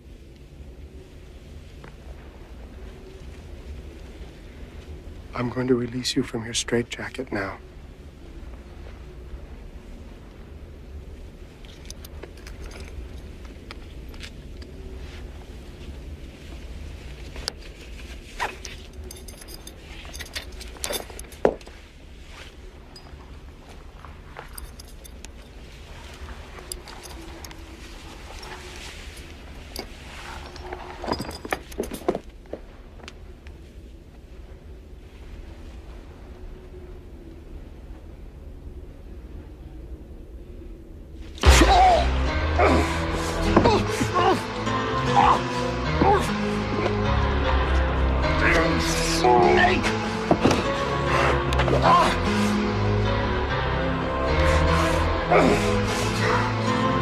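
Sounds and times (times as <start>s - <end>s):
low steady hum: 0.0s - 57.0s
metal buckles clinking: 11.6s - 14.9s, 17.4s - 21.8s, 22.8s - 32.5s.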